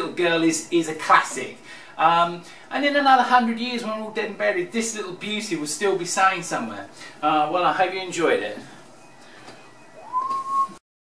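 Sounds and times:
person whistling a sliding note: 9.5s - 10.8s.

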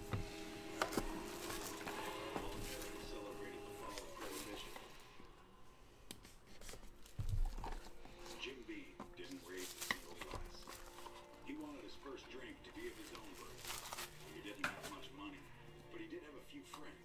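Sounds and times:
cardboard rustling: 0.0s - 5.1s, 6.1s - 15.2s.

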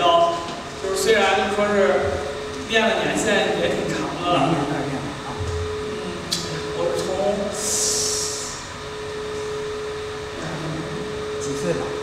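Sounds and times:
person speaking: 0.0s - 8.6s
steady even tone: 0.0s - 12.0s.

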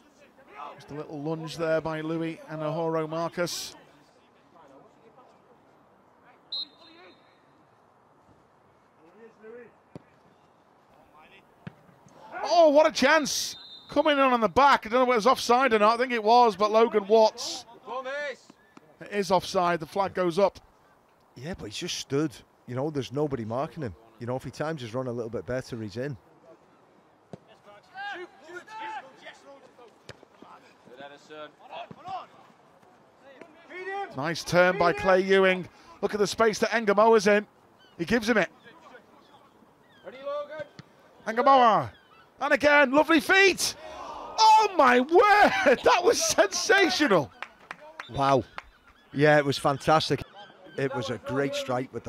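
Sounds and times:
referee whistle blast: 6.5s - 7.4s, 13.2s - 14.2s
distant players shouting: 10.9s - 19.0s, 27.3s - 37.4s, 38.0s - 52.0s.

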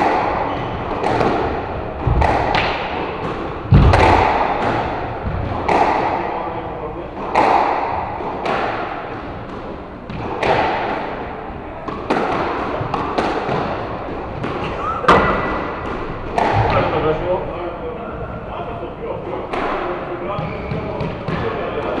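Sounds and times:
squash ball hits: 0.0s - 6.5s, 7.2s - 17.1s, 19.5s - 22.0s.

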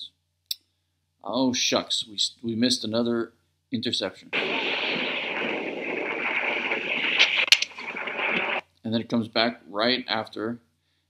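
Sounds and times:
wind on microphone: 4.4s - 8.6s.

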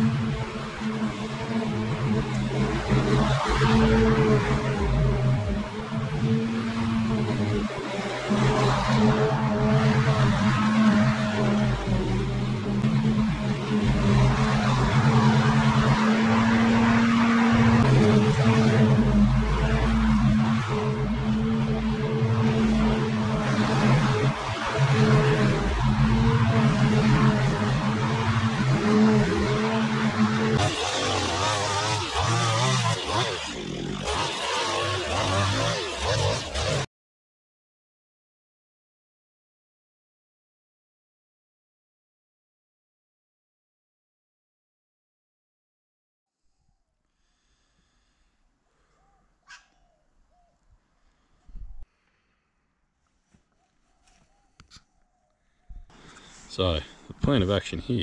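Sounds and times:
line trimmer: 10.6s - 36.9s
push mower engine running: 11.5s - 36.8s.

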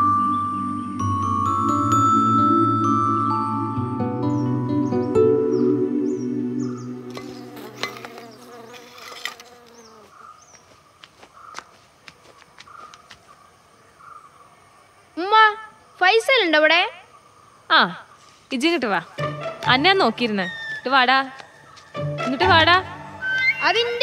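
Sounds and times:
insect buzzing: 5.5s - 11.6s, 17.2s - 24.0s.

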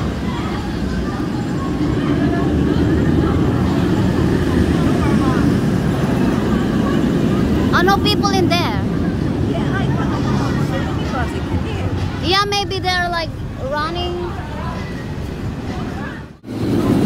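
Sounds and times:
roller coaster train roaring: 0.0s - 17.0s.

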